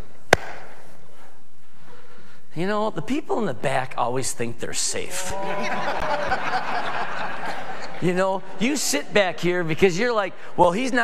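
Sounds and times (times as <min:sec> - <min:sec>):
sharp knock with echo: 0:00.3 - 0:00.7.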